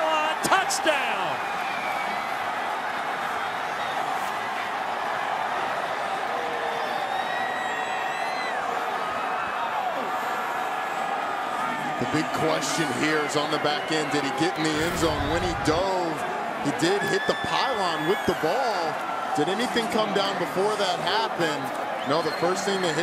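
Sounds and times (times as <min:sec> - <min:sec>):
stadium crowd cheering: 0:00.0 - 0:23.0.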